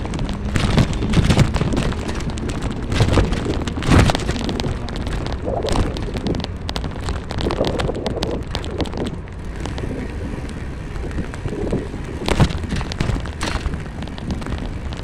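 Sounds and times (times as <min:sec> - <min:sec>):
road and engine rumble: 0:00.0 - 0:15.0
car bump: 0:12.2 - 0:13.8
clicks and knocks: 0:12.2 - 0:15.0.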